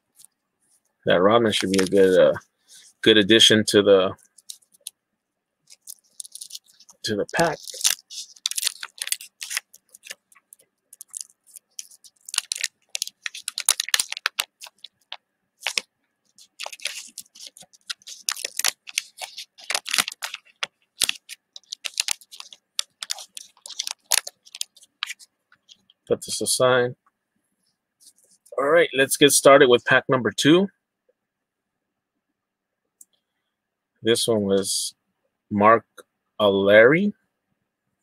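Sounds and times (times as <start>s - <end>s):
wax paper wrapper crinkling and tearing: 1.5s - 2.9s, 5.7s - 25.8s.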